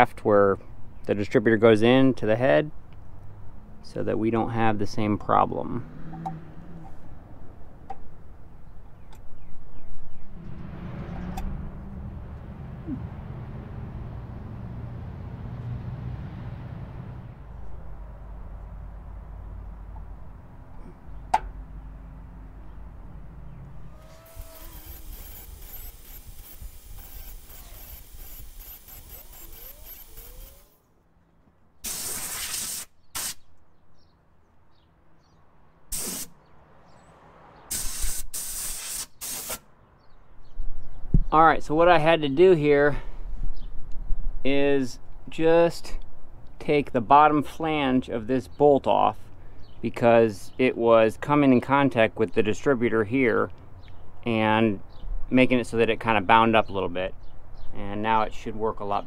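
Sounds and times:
angle grinder cutting steel: 24.0 - 30.8.

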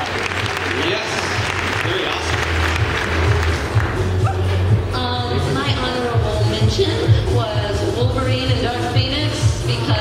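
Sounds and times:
audience applauding: 0.0 - 4.5.

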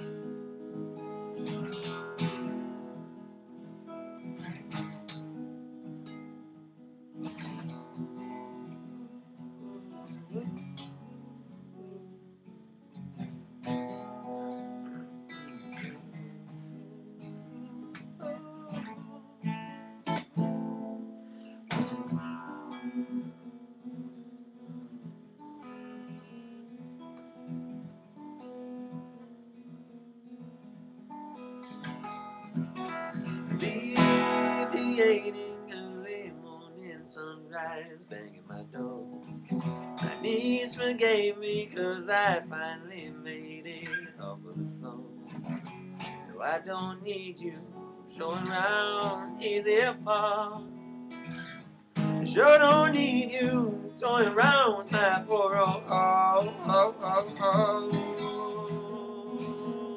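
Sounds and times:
acoustic guitar strummed chords: 0.0 - 59.9.

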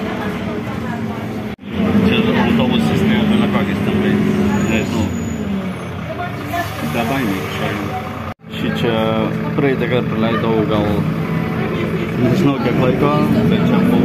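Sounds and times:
people talking: 0.0 - 5.2, 6.0 - 14.0
bus engine and road drone: 0.0 - 14.0.

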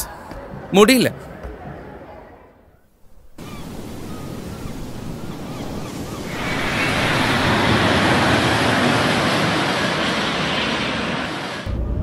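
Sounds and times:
ocean surf roaring: 3.3 - 11.7.

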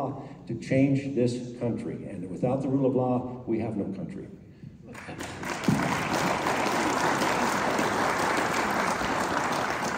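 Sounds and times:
audience applauding: 4.9 - 9.9.

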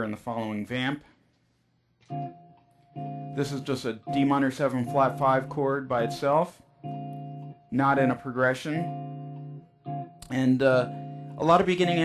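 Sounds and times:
electric guitar chord ringing: 2.1 - 12.0.

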